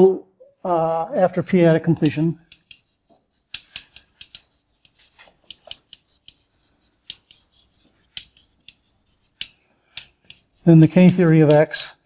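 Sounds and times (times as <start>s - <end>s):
chalk tapping and scratching on board: 1.6s - 12.0s.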